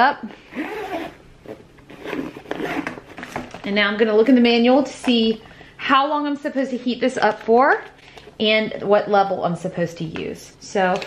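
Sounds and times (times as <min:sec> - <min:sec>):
zipper being pulled closed: 0:00.5 - 0:03.4.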